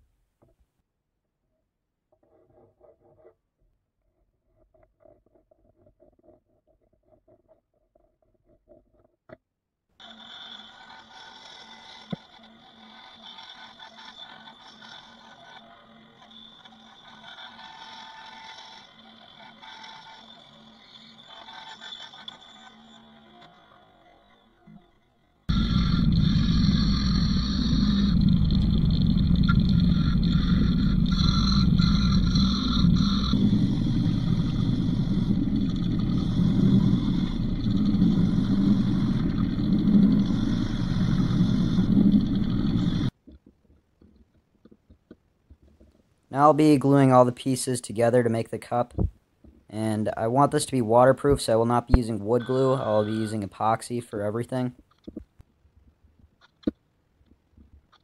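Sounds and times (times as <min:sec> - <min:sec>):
bandsaw cutting wood: 0:10.0 - 0:24.8, 0:25.5 - 0:43.1
disc sander running: 0:10.0 - 0:24.8, 0:25.5 - 0:43.1.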